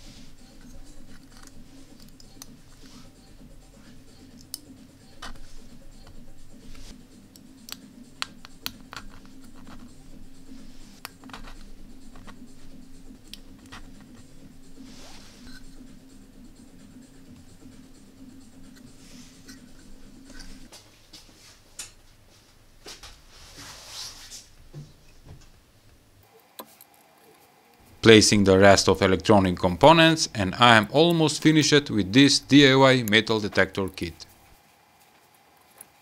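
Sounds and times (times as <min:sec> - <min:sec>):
low steady hum: 0:00.0 - 0:36.0.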